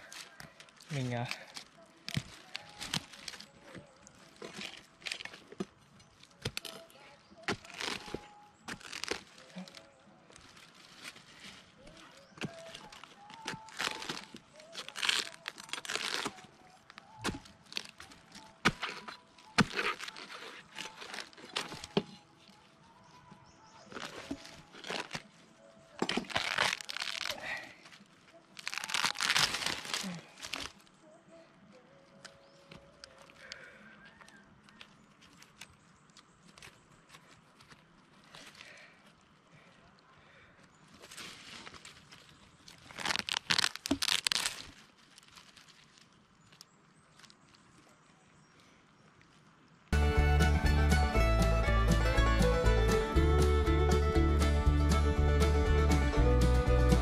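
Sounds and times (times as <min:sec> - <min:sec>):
palm pith tearing by hand: 0:00.0 - 0:03.6, 0:04.3 - 0:11.6, 0:12.4 - 0:22.1, 0:26.0 - 0:27.9, 0:28.6 - 0:30.9, 0:41.0 - 0:47.8.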